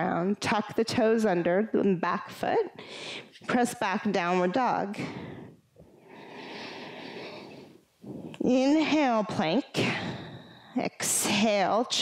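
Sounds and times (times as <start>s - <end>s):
woman breathing through the throat: 2.8s - 3.4s, 5.0s - 8.4s, 9.8s - 10.8s.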